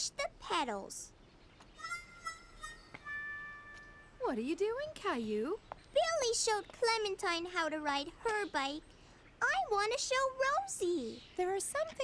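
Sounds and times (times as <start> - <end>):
soft cartoon background music: 1.8 - 4.5.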